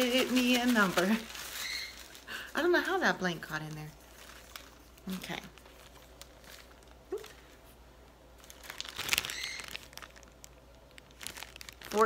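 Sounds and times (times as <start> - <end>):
paper crinkling and rustling: 0.0 - 7.8, 8.4 - 12.0.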